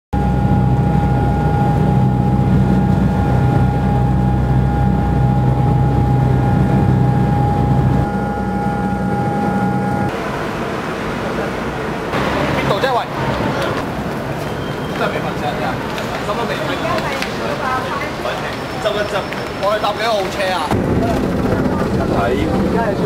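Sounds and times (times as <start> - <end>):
mechanical drone with high tone: 0.2 - 14.9.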